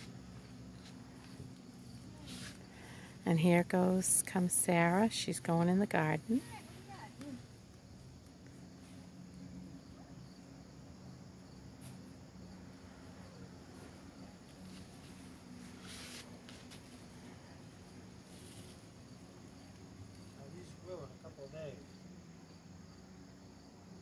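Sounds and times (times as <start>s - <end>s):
insects chirping: 0.0s - 24.0s
steady low hum: 0.0s - 24.0s.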